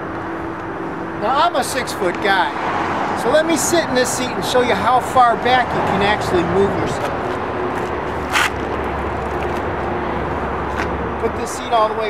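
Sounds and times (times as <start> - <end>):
seat scraping: 6.9 - 9.7.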